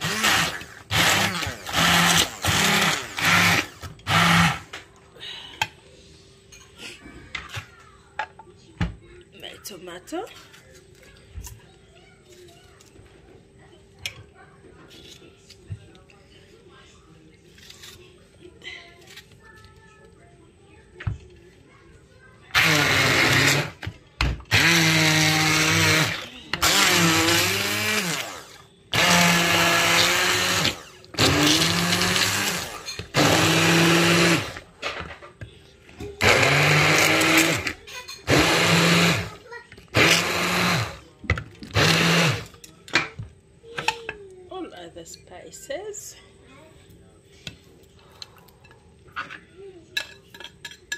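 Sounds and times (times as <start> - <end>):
immersion blender whining: 0.0 - 4.7, 22.5 - 23.9, 24.5 - 34.6, 36.2 - 41.1, 41.7 - 42.5.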